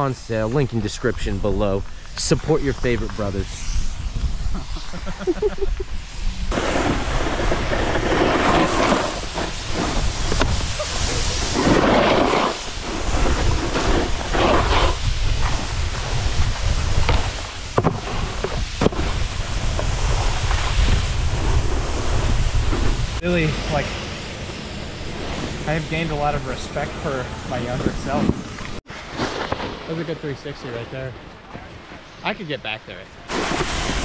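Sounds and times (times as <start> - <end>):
snowboard scraping over snow: 0.0 - 23.8, 24.4 - 31.1, 33.3 - 34.0
wind buffeting microphone: 12.6 - 23.2.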